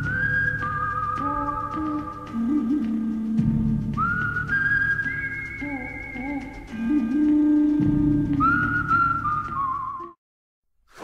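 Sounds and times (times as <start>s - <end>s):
background music with whistle-like melody: 0.0s - 10.2s.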